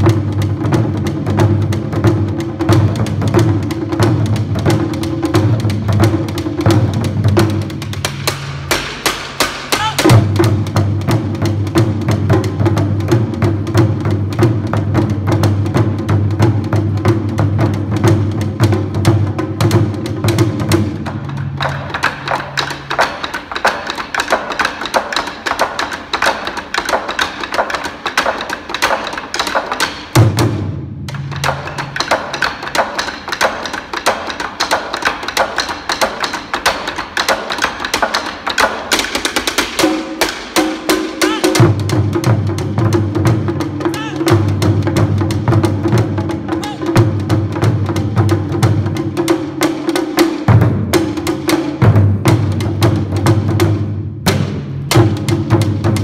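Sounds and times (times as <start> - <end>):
taiko drums played with sticks: 0.0 - 56.0.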